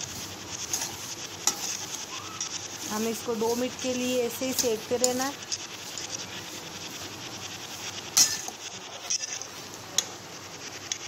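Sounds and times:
spatula scraping coconut in pan: 0:00.0 - 0:09.7.

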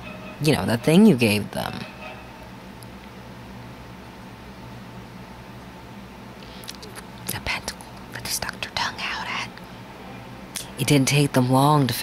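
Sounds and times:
steady low hum: 0:00.0 - 0:12.0
person whispering: 0:06.5 - 0:09.5.

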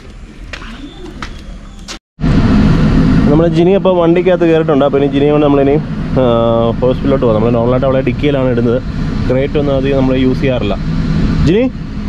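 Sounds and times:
car engine humming: 0:00.0 - 0:12.0.

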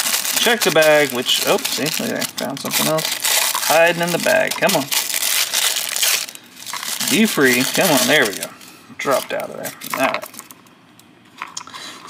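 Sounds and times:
plastic bag crinkling: 0:00.0 - 0:10.6.

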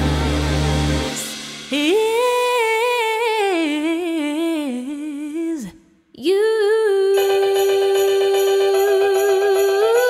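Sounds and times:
woman singing unaccompanied: 0:01.7 - 0:10.0.

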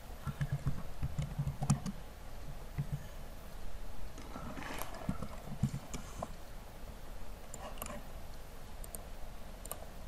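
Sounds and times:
computer keyboard keystrokes: 0:00.3 - 0:02.0.

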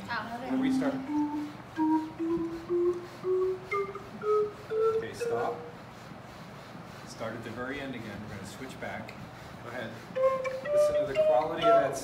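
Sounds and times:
organ pipes rising notes: 0:00.5 - 0:05.8, 0:10.2 - 0:12.0.

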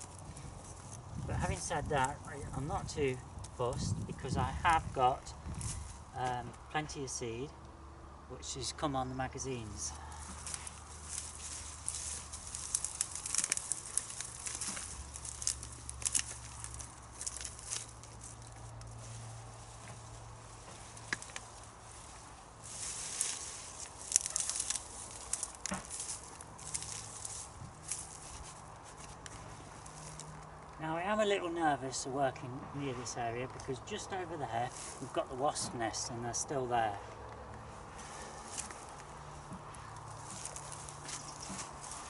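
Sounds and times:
dry plants rustling and snapping: 0:00.0 - 0:06.9, 0:09.4 - 0:42.0.

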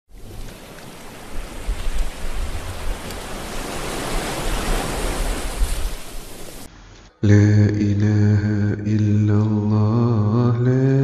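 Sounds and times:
waves breaking on a beach: 0:00.1 - 0:06.7.

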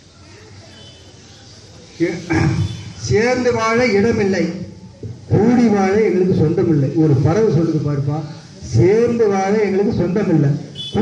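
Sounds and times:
low background noise: 0:00.0 - 0:11.0.

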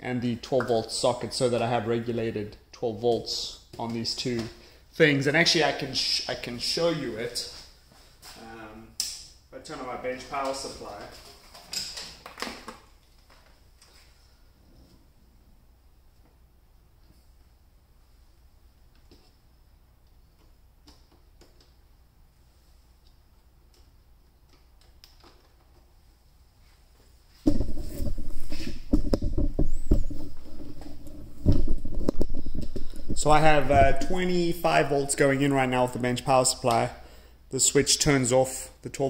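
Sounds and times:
rubbing and bumping on microphone: 0:27.3 - 0:35.0.

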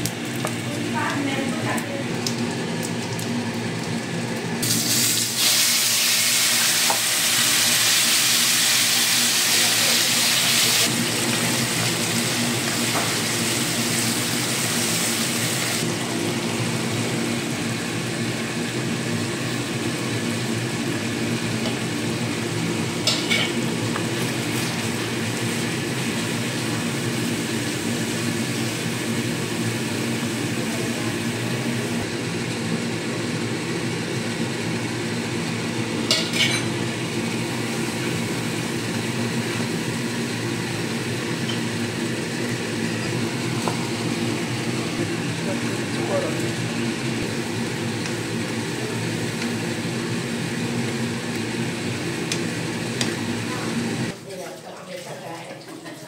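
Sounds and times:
spice paste sizzling in oil: 0:04.6 - 0:15.9.

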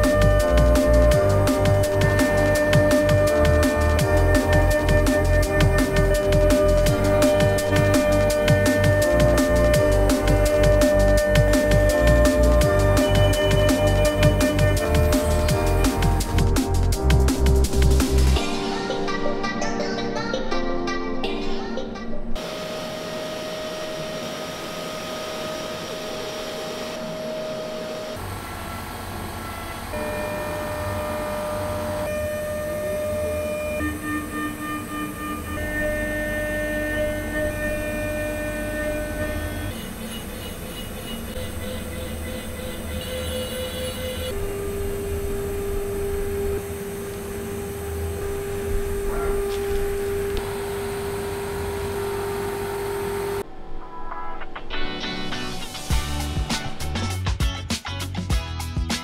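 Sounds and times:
router spindle cutting whine: 0:22.4 - 0:53.6.

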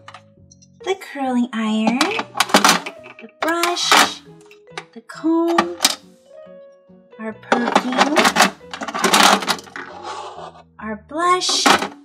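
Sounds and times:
background music: 0:00.0 - 0:12.0
plastic pieces clattering into drawer: 0:01.8 - 0:04.2, 0:07.5 - 0:10.0, 0:11.5 - 0:12.0.

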